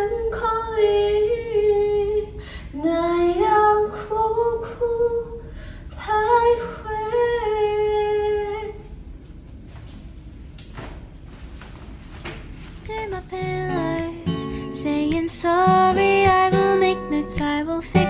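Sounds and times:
woman singing unaccompanied: 0.0s - 5.4s, 6.0s - 8.9s, 12.8s - 18.0s.

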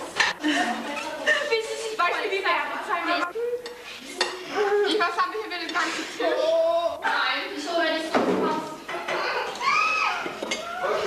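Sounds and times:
children talking: 0.0s - 11.0s
cutlery clinking on plates: 8.9s - 10.8s.

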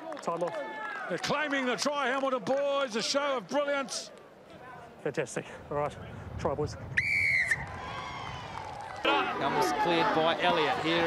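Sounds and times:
low background noise: 0.0s - 11.0s
pea whistle blast: 7.0s - 7.6s.

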